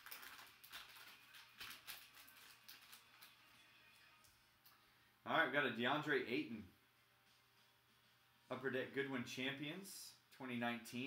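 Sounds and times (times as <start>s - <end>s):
foil card pack crinkling: 0.0s - 3.6s.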